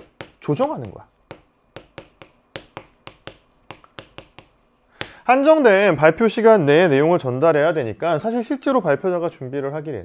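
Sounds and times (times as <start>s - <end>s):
chalk tapping on chalkboard: 0.0s - 5.2s.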